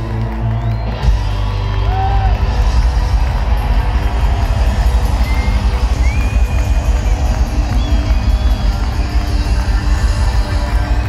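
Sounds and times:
live rock band: 0.0 - 11.0.

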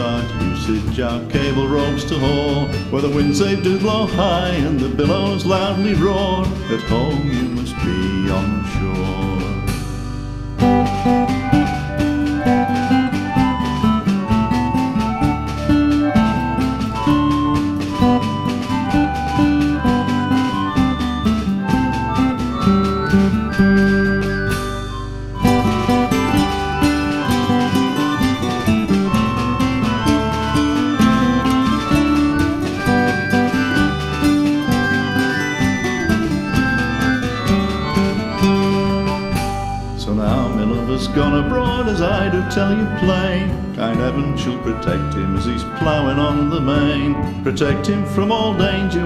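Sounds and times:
folk band playing: 0.0 - 49.0.

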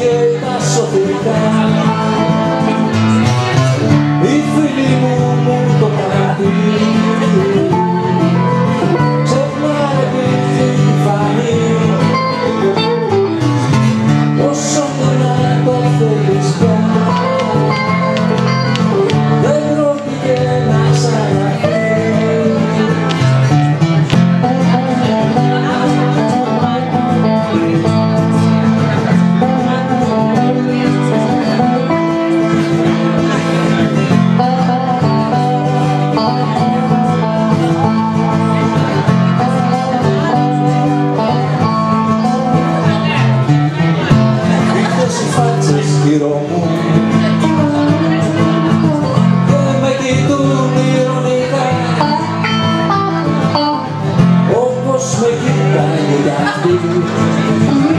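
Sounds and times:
acoustic and electric guitars: 0.0 - 57.9.

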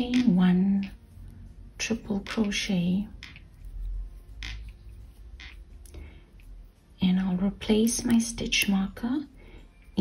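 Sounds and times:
thread rubbing on crochet hook: 0.0 - 5.8
low steady hum: 0.0 - 10.0.

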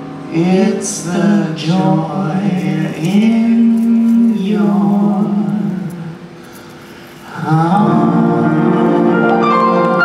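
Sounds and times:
grand piano: 0.0 - 10.0
person singing: 0.3 - 6.3, 7.2 - 10.0.

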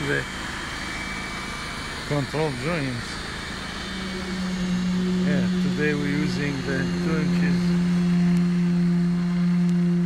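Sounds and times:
concrete vibrator humming: 0.0 - 10.0.

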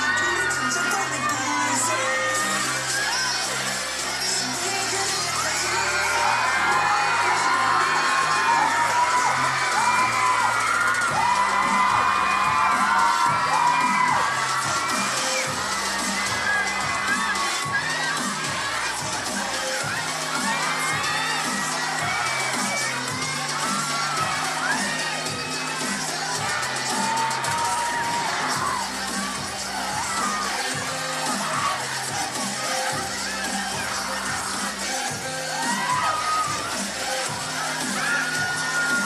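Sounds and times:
audience screaming and cheering: 0.0 - 39.0
dance track with steady beat: 0.0 - 39.0.

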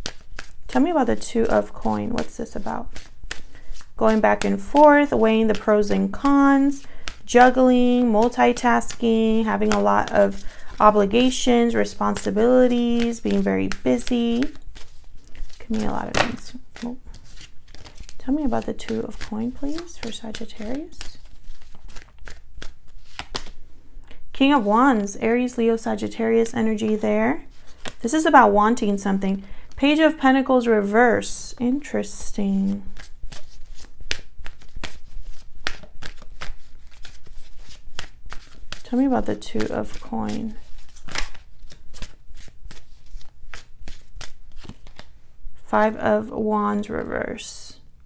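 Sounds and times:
cards being shuffled: 0.0 - 23.6, 26.8 - 28.2, 32.6 - 45.2.

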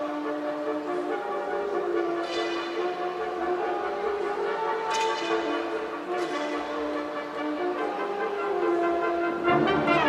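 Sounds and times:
brass band playing chords: 0.0 - 10.0.

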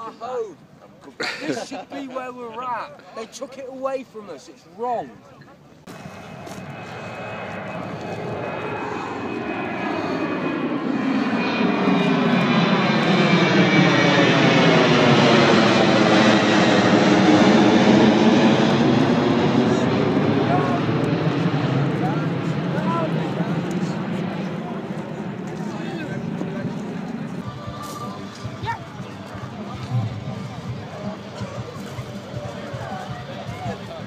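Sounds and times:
aeroplane passing overhead: 5.2 - 34.0.

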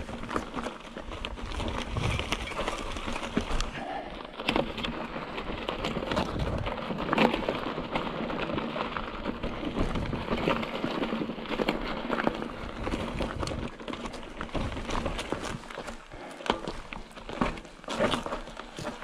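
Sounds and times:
bike rattling over rocks: 0.0 - 19.0
tyres crackling on gravel: 0.0 - 19.0.

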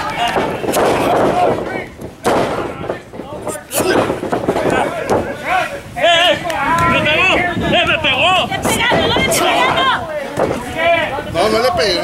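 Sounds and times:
people shouting: 3.5 - 11.2.

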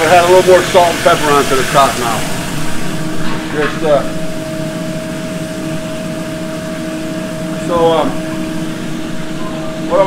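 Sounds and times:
kitchen ventilation fans humming: 0.0 - 10.0.

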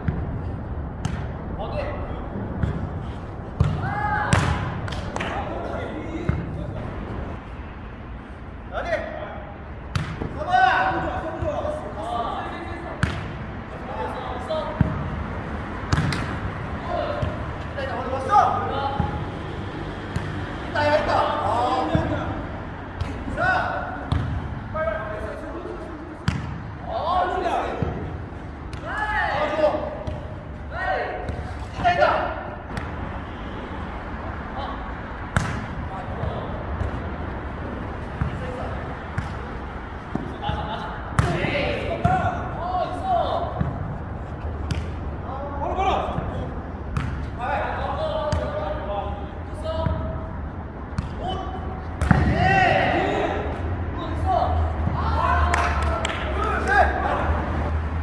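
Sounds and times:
ball bouncing on turf: 2.6 - 2.9, 3.5 - 5.4, 9.9 - 10.4, 12.9 - 13.4, 15.9 - 17.5, 24.0 - 24.6, 26.2 - 26.7, 35.3 - 37.0, 38.0 - 42.4, 44.6 - 45.0, 46.0 - 47.4, 50.9 - 51.3, 52.0 - 52.4
players shouting: 3.6 - 7.4, 13.7 - 19.4, 26.8 - 32.7, 38.1 - 43.8, 51.1 - 57.8.

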